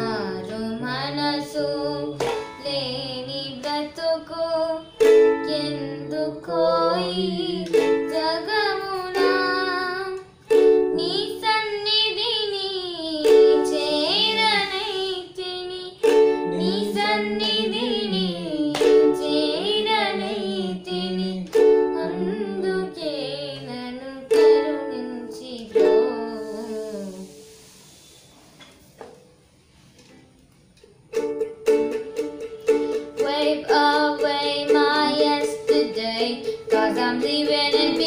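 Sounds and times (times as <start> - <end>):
child singing: 0.0 - 27.3, 33.1 - 38.0
ukulele strumming: 0.0 - 27.8, 30.0 - 38.0.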